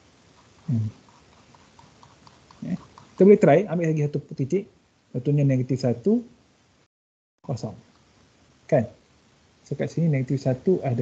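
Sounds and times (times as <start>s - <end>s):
stylus ticking on tablet: 0.4s - 3.4s.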